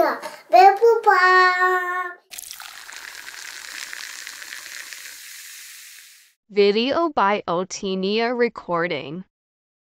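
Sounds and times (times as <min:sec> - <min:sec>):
steady hiss: 0:02.8 - 0:06.4.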